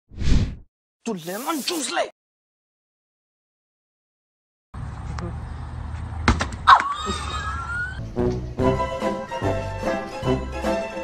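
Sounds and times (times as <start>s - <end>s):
person speaking: 1.0s - 2.1s.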